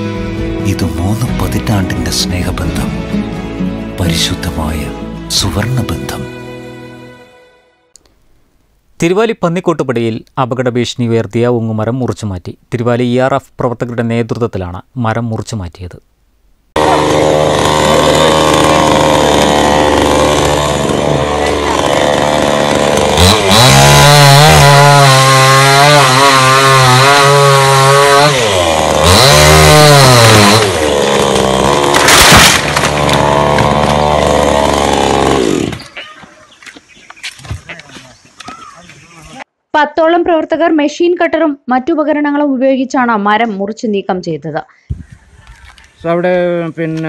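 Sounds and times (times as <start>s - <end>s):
chainsaw cutting wood: 16.8s - 36.0s.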